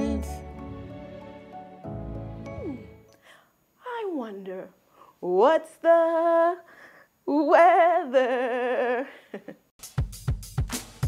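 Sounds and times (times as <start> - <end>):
person singing: 0.0 - 0.7.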